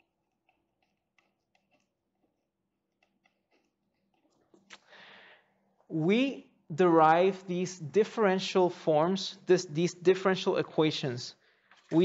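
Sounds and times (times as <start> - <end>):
pen writing on paper: 0.0 - 4.3.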